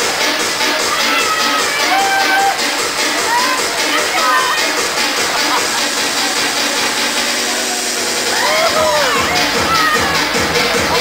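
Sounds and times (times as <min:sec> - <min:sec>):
crowd shouting: 0:00.0 - 0:11.0
electronic dance music: 0:00.0 - 0:11.0.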